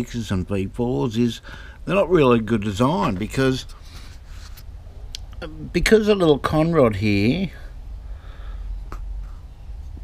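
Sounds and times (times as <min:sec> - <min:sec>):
low steady rumble: 0:00.0 - 0:10.0
faint breath: 0:01.4 - 0:01.8, 0:07.6 - 0:09.6.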